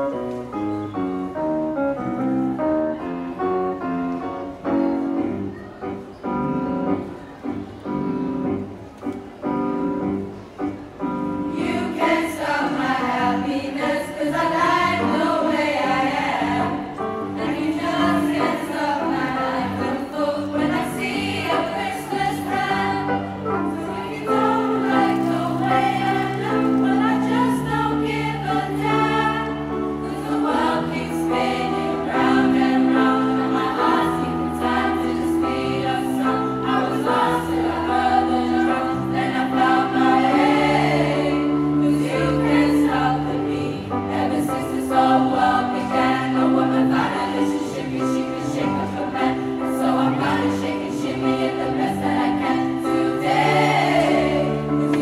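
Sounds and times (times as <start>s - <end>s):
keyboard accompaniment: 0.0s - 55.0s
youth choir singing: 11.5s - 55.0s.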